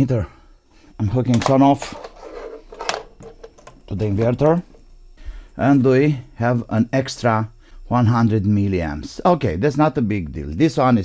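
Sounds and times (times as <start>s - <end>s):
wires and connectors rattling: 1.3s - 4.8s.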